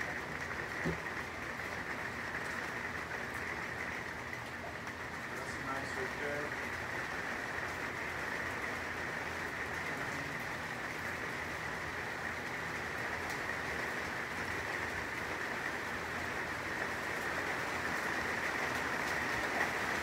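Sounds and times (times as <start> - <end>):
rain falling: 0.0 - 20.0.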